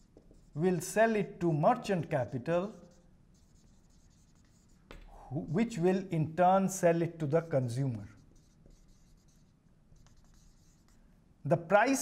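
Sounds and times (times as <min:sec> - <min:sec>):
marker scratching on whiteboard: 0:00.0 - 0:01.2, 0:01.8 - 0:05.8, 0:07.1 - 0:11.1.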